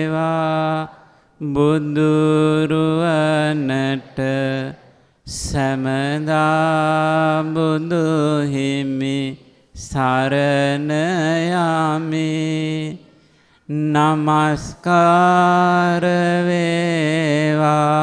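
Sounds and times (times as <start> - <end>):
man chanting: 0.0 - 18.0
intake of breath: 0.9 - 1.4, 4.8 - 5.3, 13.0 - 13.7.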